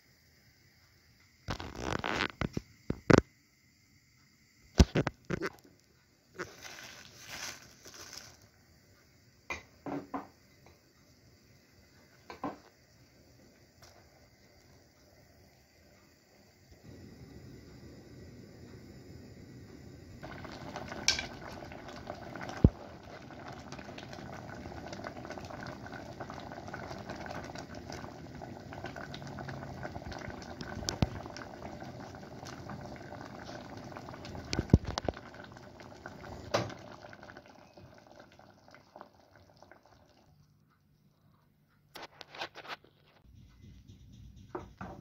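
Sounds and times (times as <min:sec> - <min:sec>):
soup bubbling in a metal pot: 0:19.9 - 0:40.5.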